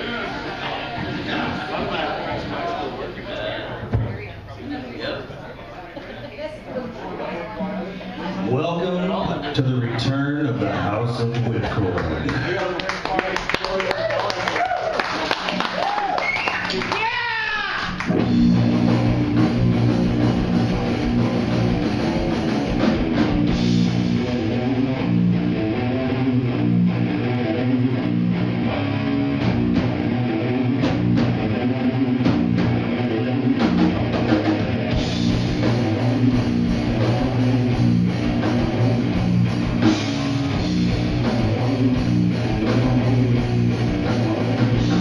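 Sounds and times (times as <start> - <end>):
heavy metal band playing: 16.8 - 45.0.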